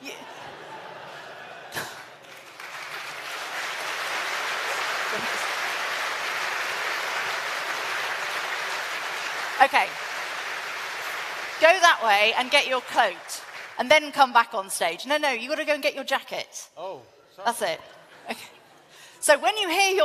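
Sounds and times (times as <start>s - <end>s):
audience applauding: 1.7s - 14.4s.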